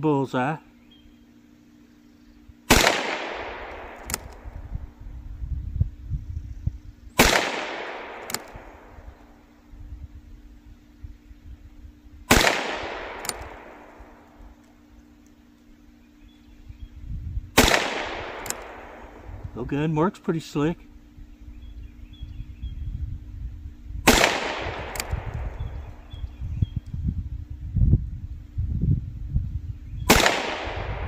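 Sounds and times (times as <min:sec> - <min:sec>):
revolver shots echoing: 0:02.7 - 0:04.6, 0:07.2 - 0:09.4, 0:12.3 - 0:14.4, 0:17.6 - 0:19.3, 0:24.1 - 0:25.7, 0:30.1 - 0:31.0
revolver hammer cocking click: 0:03.7 - 0:04.6, 0:08.1 - 0:08.8, 0:12.4 - 0:13.9, 0:17.6 - 0:18.9, 0:24.8 - 0:25.7.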